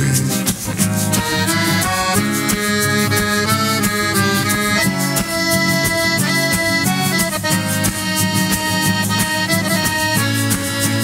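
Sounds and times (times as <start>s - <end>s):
acoustic guitar strumming: 0.0s - 11.0s
piano accordion melody: 0.0s - 11.0s.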